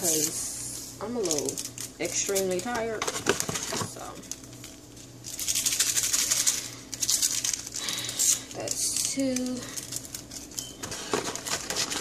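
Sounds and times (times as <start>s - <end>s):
sugar pouring into cup: 5.2s - 10.3s.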